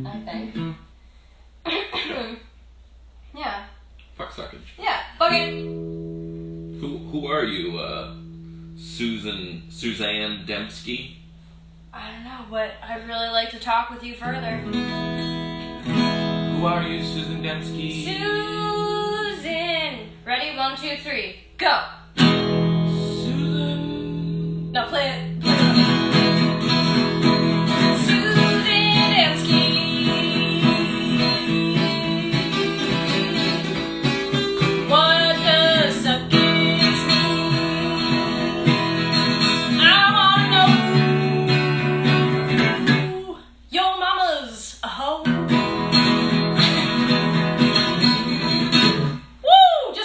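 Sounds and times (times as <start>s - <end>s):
acoustic guitar strumming: 0.0s - 0.9s, 5.2s - 11.9s, 12.6s - 21.2s, 22.0s - 43.3s, 45.2s - 49.4s
voices singing: 27.8s - 43.3s.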